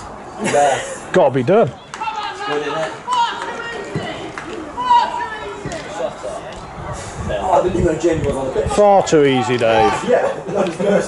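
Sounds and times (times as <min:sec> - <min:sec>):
men talking: 0:00.4 - 0:03.0, 0:05.6 - 0:11.0.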